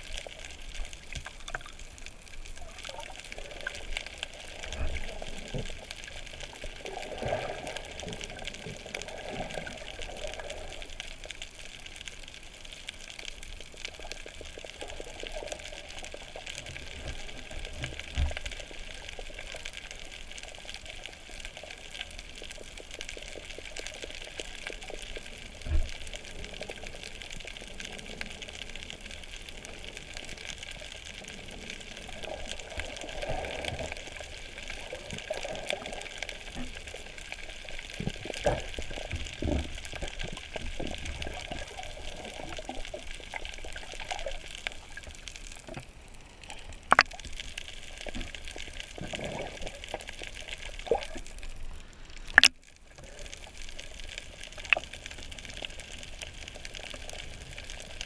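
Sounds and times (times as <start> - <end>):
underwater hiss with crackling: 0.0 - 58.0
water swells: 0.0 - 58.0.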